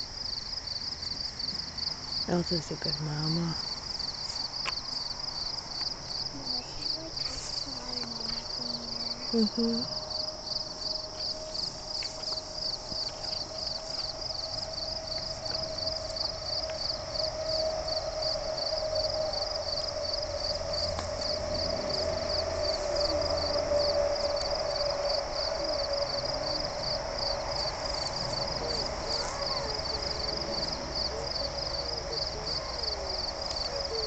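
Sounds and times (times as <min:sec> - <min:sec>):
insects chirping: 0:00.0 - 0:34.0
steady low hum: 0:00.0 - 0:34.0.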